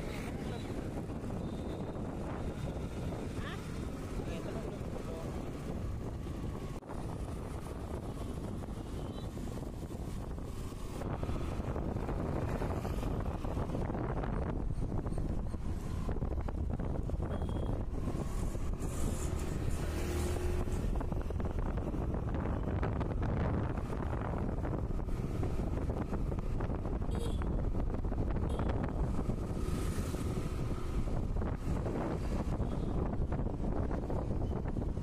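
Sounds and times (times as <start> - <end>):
road traffic: 0.0 - 35.0
wind buffeting microphone: 0.0 - 35.0.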